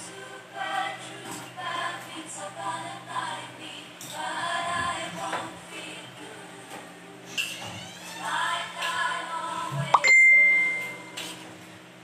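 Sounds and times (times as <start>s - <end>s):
metallic ding: 10.0s - 11.1s.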